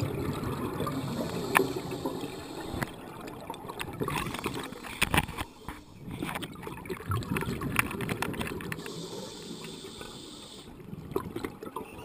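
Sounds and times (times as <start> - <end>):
gurgling exhaust bubbles underwater: 0.0 - 12.0
regulator inhalation hiss: 0.9 - 2.9, 8.8 - 10.8.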